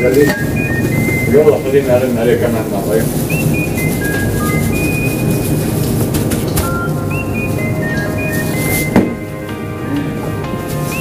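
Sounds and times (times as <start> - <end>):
background music with held high notes: 0.0 - 11.0.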